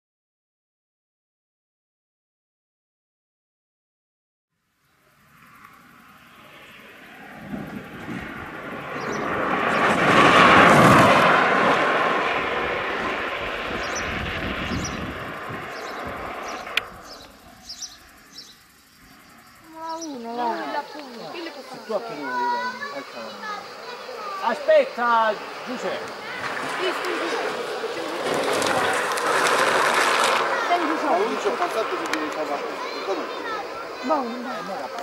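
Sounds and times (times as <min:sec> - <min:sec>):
kart rolling past on asphalt: 0:04.8 - 0:35.0.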